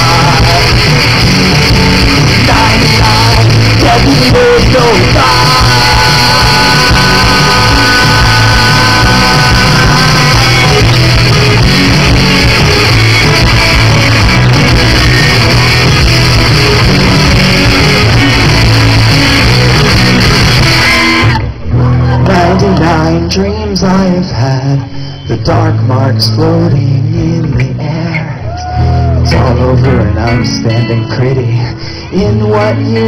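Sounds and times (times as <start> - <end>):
electric guitar long note: 0.0 - 24.1
live rock band playing: 0.0 - 33.0.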